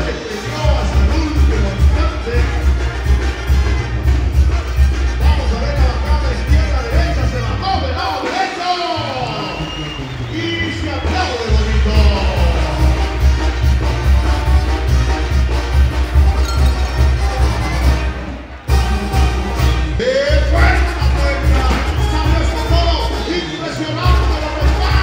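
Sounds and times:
crowd noise and cheering: 0.0s - 25.0s.

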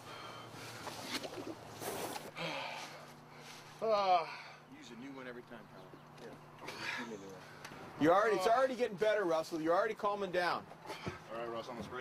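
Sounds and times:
man breathing hard: 0.0s - 0.9s, 2.3s - 4.7s.

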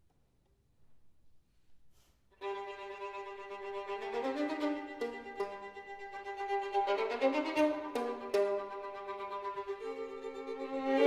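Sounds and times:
violins playing bowed note: 2.4s - 11.0s.

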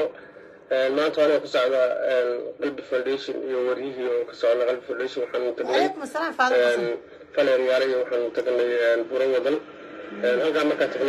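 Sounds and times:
woman speaking: 5.6s - 6.9s.

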